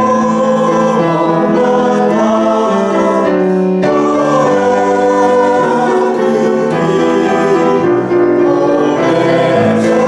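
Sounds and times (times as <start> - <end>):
small chorus singing: 0.0 - 10.0.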